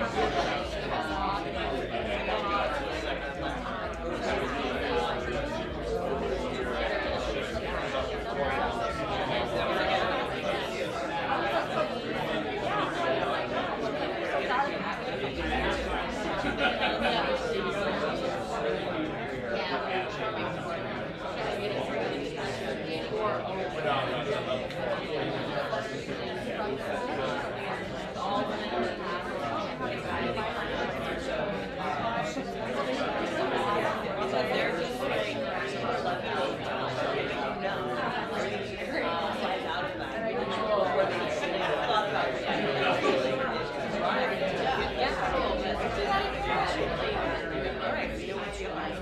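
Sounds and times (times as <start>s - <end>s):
hubbub of overlapping conversation: 0.0s - 49.0s
people chattering: 0.0s - 49.0s.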